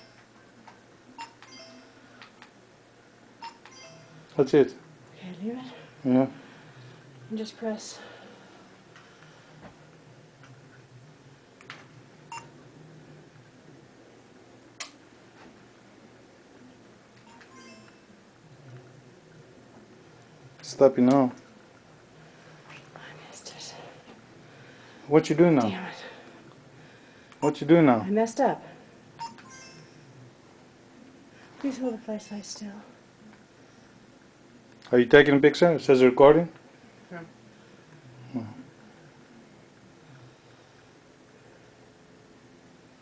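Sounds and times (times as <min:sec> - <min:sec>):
low steady hum: 0:00.0 - 0:43.0.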